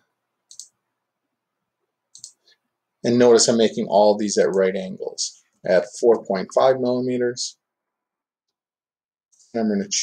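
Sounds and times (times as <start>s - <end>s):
computer mouse click: 0.5s - 0.8s, 2.1s - 2.5s.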